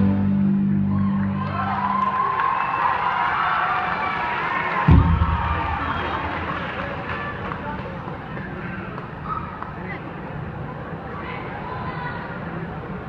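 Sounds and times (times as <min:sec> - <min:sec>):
audience cheering with whoops: 0:00.8 - 0:07.4
low thump: 0:04.9 - 0:06.0.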